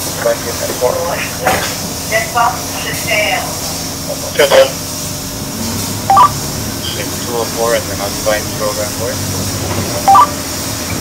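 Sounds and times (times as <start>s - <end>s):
bus interior hum: 4.8s - 11.0s
two-tone radio beep: 6.1s - 6.3s, 10.0s - 10.3s.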